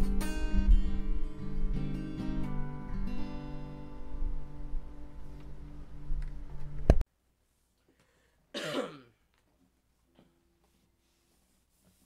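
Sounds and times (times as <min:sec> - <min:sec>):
person clearing throat: 0:08.5 - 0:09.2.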